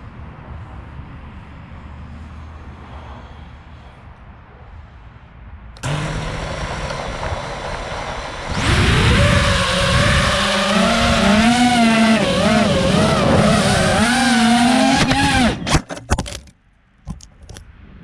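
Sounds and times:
drone propellers whining: 5.8 - 16.0.

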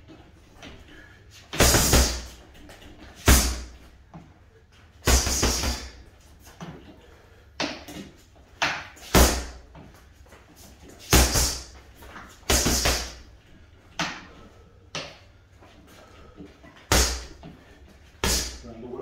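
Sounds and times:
boxing gloves punching bag: 1.5 - 3.9, 5.0 - 6.9, 7.6 - 9.8, 10.9 - 13.3, 16.8 - 18.6.

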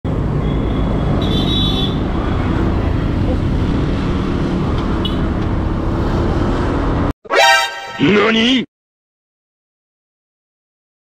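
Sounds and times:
passing traffic: 0.1 - 8.0
short high-pitched tones: 7.3 - 8.2.

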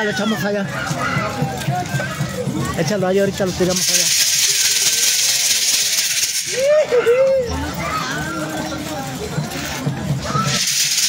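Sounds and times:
voices: 0.0 - 10.8
hand rattles shaking: 1.5 - 7.2, 8.0 - 11.0.

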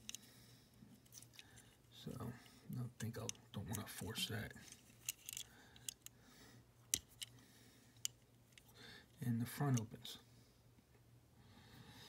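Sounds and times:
fingernails clicking on toy car: 5.0 - 6.1.

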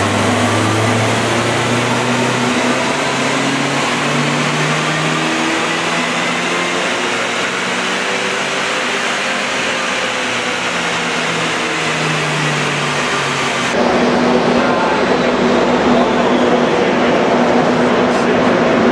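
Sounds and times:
car engine running: 0.0 - 16.7.

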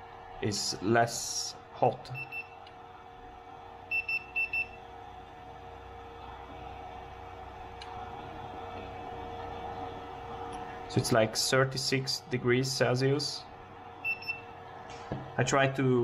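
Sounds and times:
electrical hum: 0.0 - 16.0
high electronic beeps: 14.0 - 14.4.

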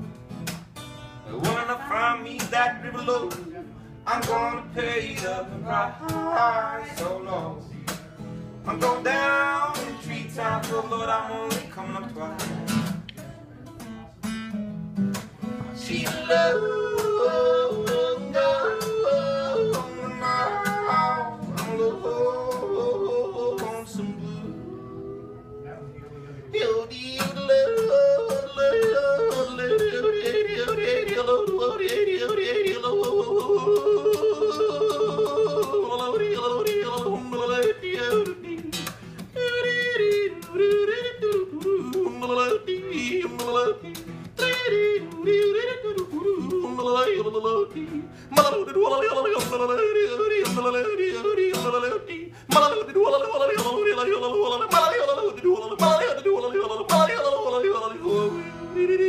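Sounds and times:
person yodeling: 15.9 - 38.6, 39.4 - 59.0.

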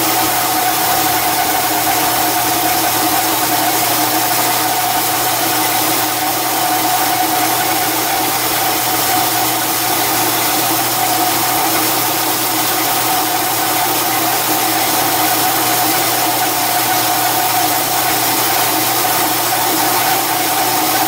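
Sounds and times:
metal lathe cutting: 0.0 - 21.0.

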